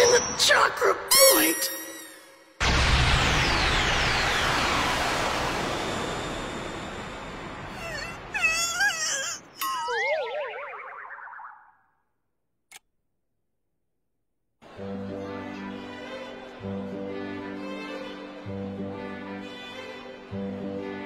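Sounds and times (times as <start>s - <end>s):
cartoon hit sound effect: 7.8s - 11.7s
wobbling wavering tones: 8.4s - 11.9s.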